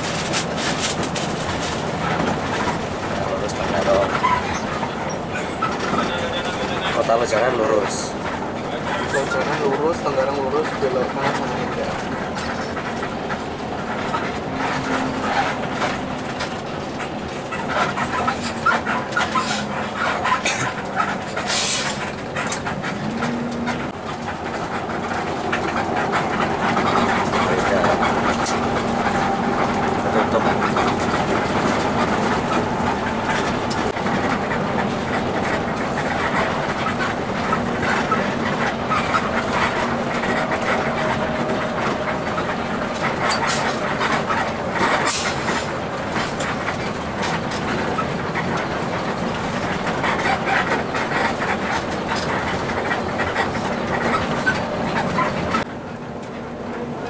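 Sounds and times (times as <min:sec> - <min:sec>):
bus body rattling: 0:00.0 - 0:57.0
bus engine hum: 0:00.0 - 0:57.0
road noise: 0:00.0 - 0:57.0.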